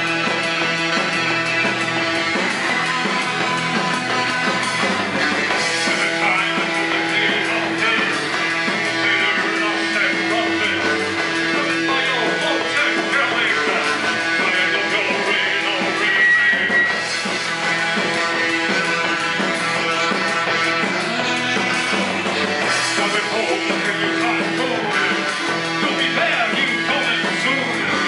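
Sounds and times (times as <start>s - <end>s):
live rock band playing: 0.0s - 28.0s.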